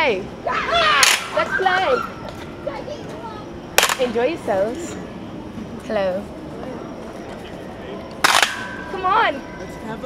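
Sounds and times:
faint voices: 0.0 - 10.0
sharp crack: 1.0 - 1.4, 3.8 - 4.1, 8.2 - 8.8.

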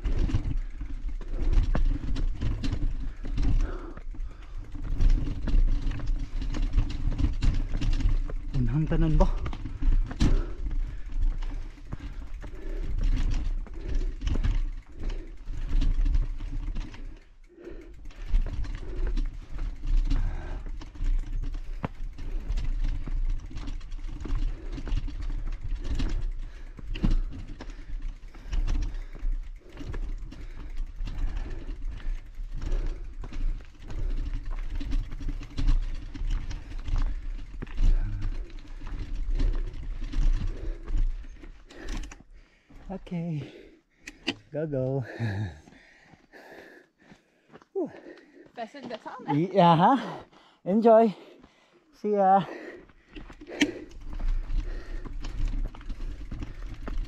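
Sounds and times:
footsteps on dirt trail: 0.0 - 17.2, 17.9 - 43.7, 45.0 - 57.0.

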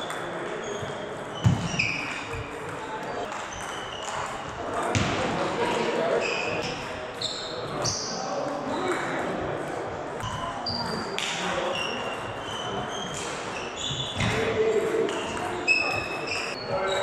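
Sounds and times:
shoes squeaking on floor: 0.0 - 5.0, 6.1 - 9.2, 10.2 - 17.0.

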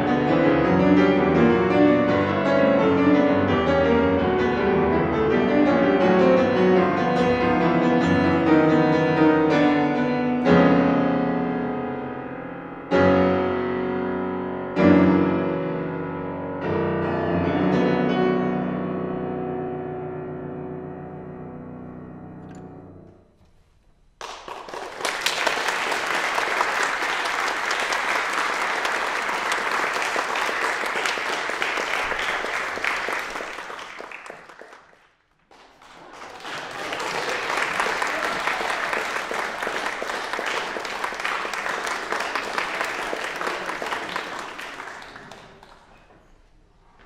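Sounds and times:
audience applauding: 24.2 - 46.2.

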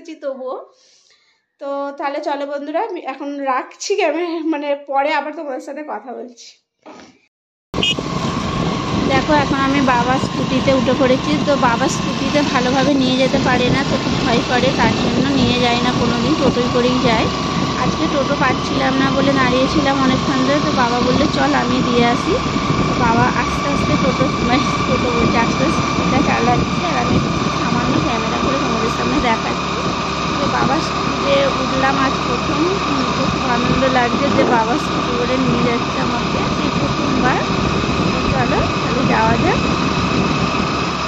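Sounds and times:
motor scooter engine: 7.8 - 41.0
road noise: 7.8 - 41.0.

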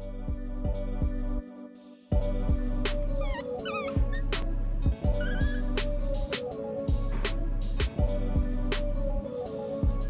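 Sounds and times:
background music: 0.0 - 10.0
otter pup squeaking: 3.1 - 4.4, 5.0 - 6.0.

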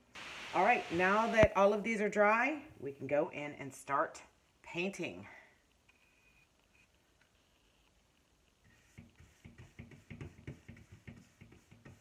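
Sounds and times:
paintbrush scrubbing on wood: 8.7 - 12.0.

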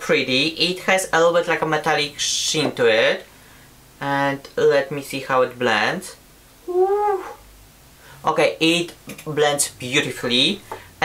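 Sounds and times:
short voiced call: 6.7 - 7.4.

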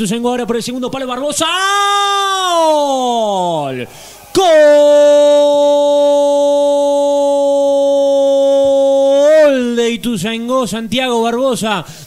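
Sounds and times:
commentator's drawn-out goal cry: 1.3 - 9.8.

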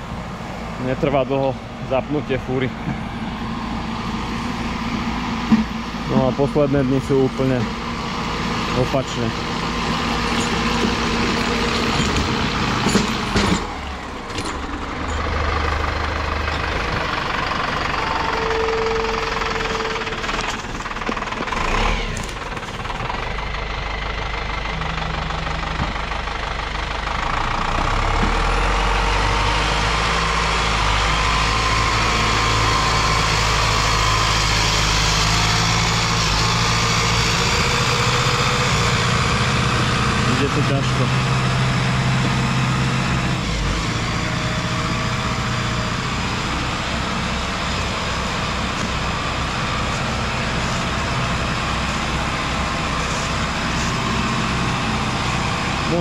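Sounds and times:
tractor diesel engine under load: 0.0 - 56.0.

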